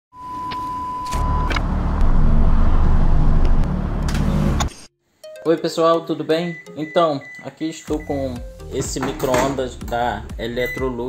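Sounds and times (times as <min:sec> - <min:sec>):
loud low rumble: 0:01.5 - 0:04.6
test tone beep: 0:06.5 - 0:08.3.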